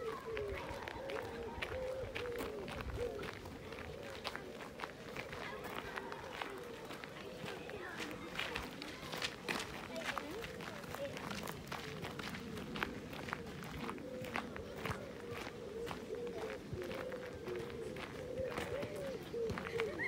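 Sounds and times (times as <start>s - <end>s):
indistinct voices talking: 0.0s - 20.0s
footsteps crunching on gravel: 0.1s - 20.0s.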